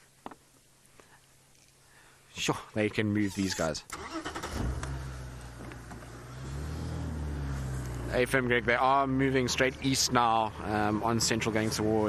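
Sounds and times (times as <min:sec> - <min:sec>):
vehicle engine low hum: 0:04.3 - 0:12.0.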